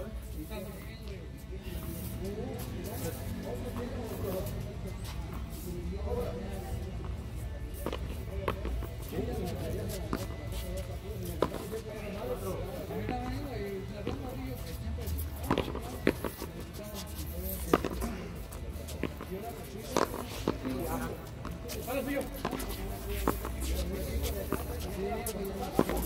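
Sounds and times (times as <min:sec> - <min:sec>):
voices: 0:00.0 - 0:26.0.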